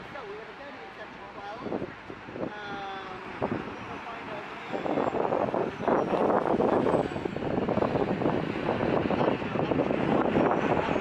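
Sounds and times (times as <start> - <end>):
people talking: 0.0 - 1.8, 2.5 - 5.1
road traffic: 0.0 - 11.0.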